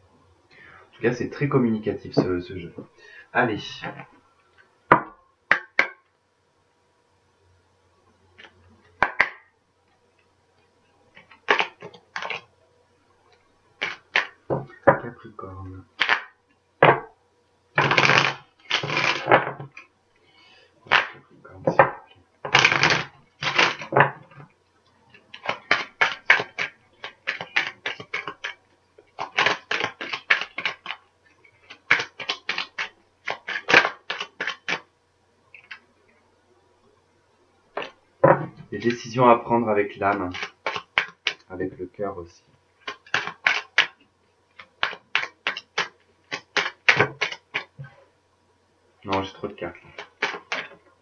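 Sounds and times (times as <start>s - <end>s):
cards shuffling: 11.2s - 12.5s, 13.8s - 14.8s, 16.0s - 16.3s, 17.8s - 19.8s, 20.9s - 24.5s, 25.1s - 34.9s, 40.0s - 41.5s, 42.8s - 47.9s, 49.1s - 50.8s.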